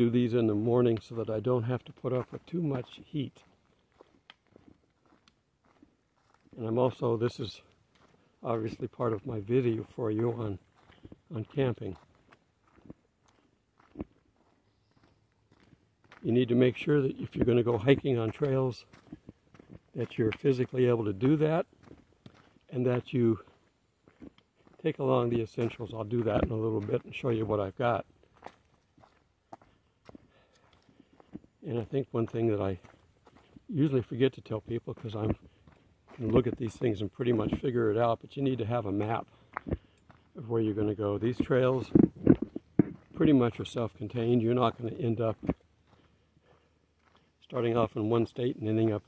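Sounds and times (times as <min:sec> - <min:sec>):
faint footsteps: 0:00.0 - 0:49.0.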